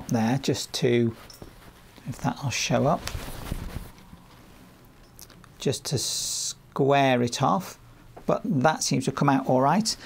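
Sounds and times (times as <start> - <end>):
fabric rustling: 1.0 - 4.8.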